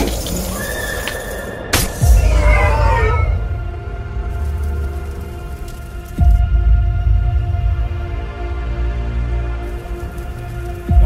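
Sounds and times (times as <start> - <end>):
animal-like cry: 0.6 - 3.5.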